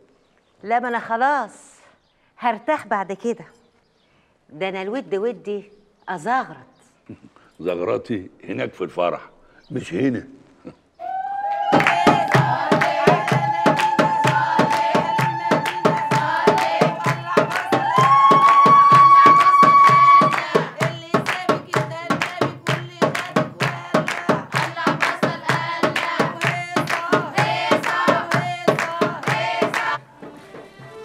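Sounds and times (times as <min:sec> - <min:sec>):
women singing: 0:11.0 - 0:30.1
women clapping in rhythm: 0:11.5 - 0:30.0.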